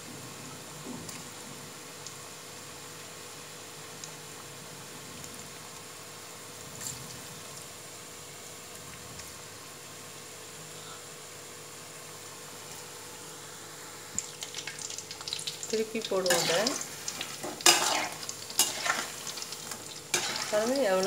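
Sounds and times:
oil sizzling in deep-frying: 0.0s - 21.0s
sharp crackles and clicks: 14.2s - 21.0s.

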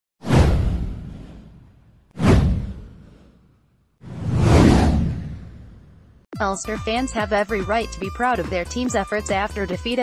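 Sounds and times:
whoosh with deep low boom: 0.2s - 6.3s.

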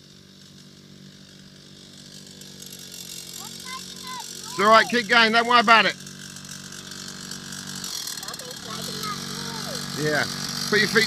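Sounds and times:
two-stroke dirt bike engine: 0.0s - 11.0s.

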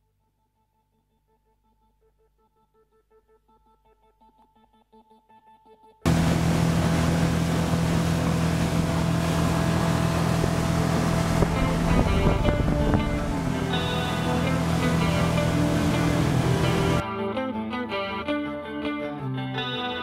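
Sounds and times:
outboard motor running: 6.1s - 17.0s
wind and water rushing: 6.1s - 17.0s
faint music: 8.7s - 17.5s.

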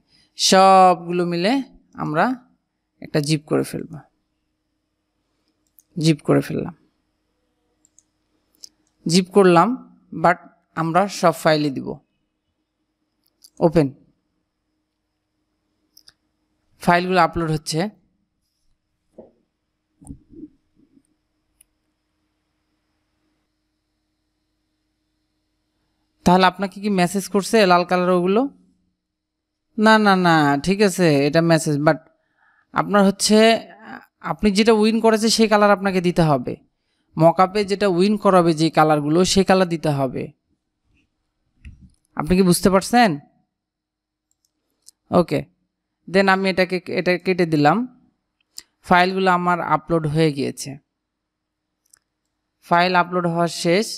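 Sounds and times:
computer mouse clicks: 7.8s - 9.0s, 44.2s - 45.0s.

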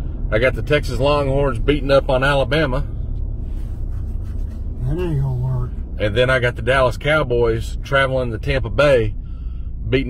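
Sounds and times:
car interior road and engine rumble: 0.0s - 10.0s
man speaking: 4.8s - 8.8s.

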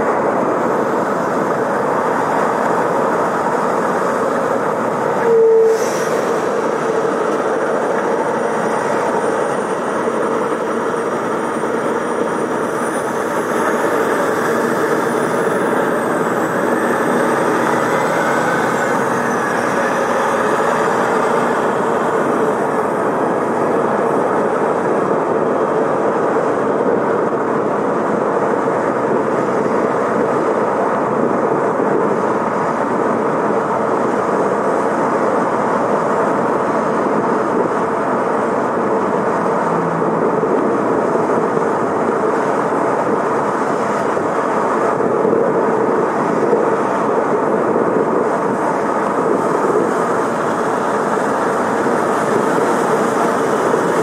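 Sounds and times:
car tyre noise on highway: 0.0s - 54.0s.

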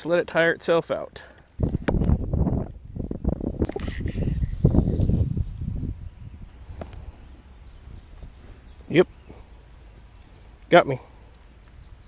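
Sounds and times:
wind gusting over microphone: 1.5s - 9.6s.

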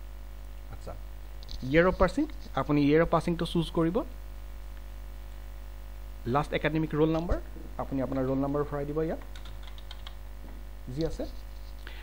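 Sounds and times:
keyboard typing: 9.2s - 10.2s.

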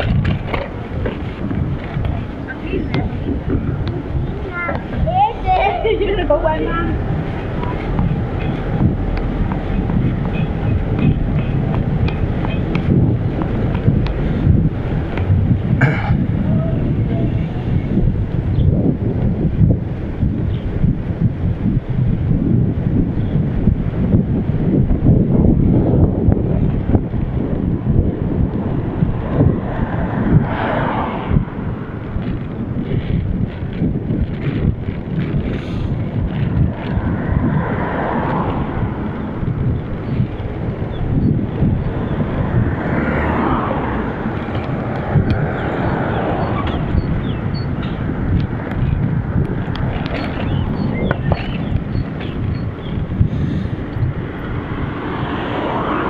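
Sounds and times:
road traffic passing: 0.0s - 56.0s
wind buffeting microphone: 0.0s - 56.0s.

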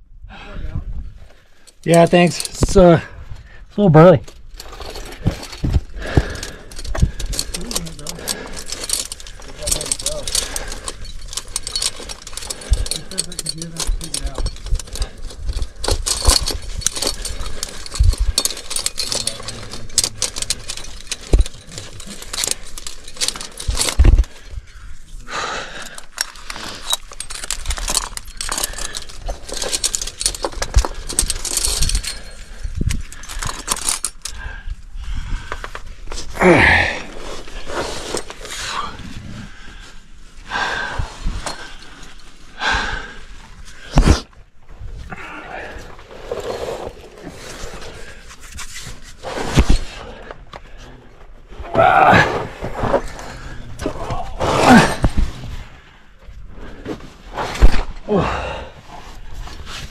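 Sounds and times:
climbing gear jangling and clinking: 1.6s - 39.2s, 40.6s - 44.4s, 45.0s - 50.9s, 52.8s - 57.0s.

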